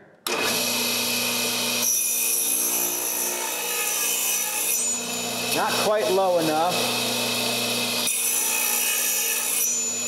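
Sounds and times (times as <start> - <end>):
saw cutting wood: 0.3 - 10.0.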